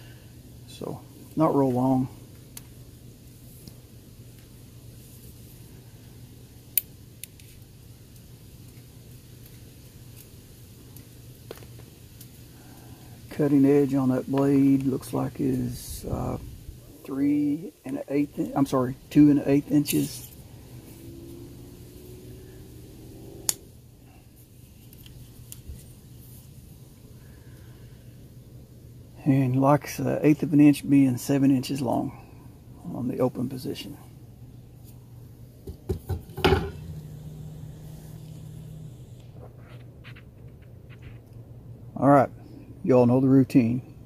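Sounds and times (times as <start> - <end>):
low steady hum: 0.0 - 44.0
sharp metallic click: 23.4 - 23.6.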